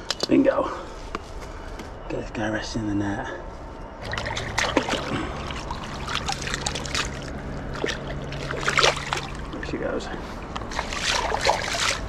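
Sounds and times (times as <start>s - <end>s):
fish splashing: 4.0s - 9.6s, 10.5s - 12.0s
water splashing and dripping: 4.0s - 9.7s, 10.4s - 12.0s.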